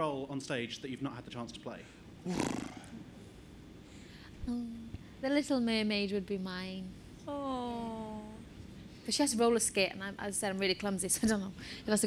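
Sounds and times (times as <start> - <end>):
person breathy vocal sound: 2.3 - 3.0.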